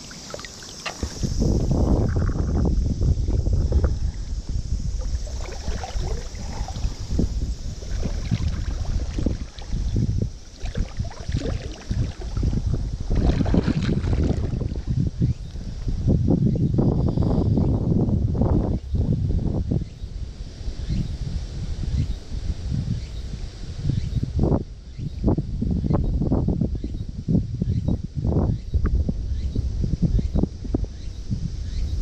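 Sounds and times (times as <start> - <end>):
river water: 0.0 - 15.8
wind buffeting microphone: 0.0 - 32.0.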